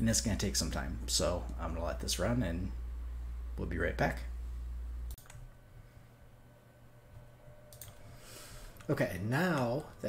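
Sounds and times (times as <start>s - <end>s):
low steady hum: 0.0s - 10.0s
computer clicks: 5.1s - 5.5s, 7.7s - 8.0s.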